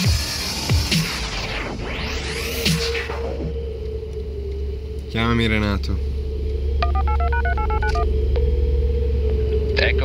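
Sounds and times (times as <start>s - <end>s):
telephone keypad dialing tones: 6.8s - 8.1s.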